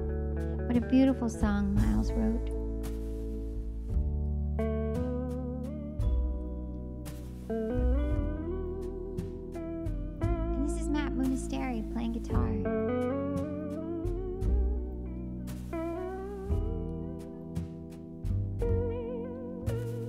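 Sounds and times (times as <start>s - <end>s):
slow guitar instrumental: 0.0s - 20.0s.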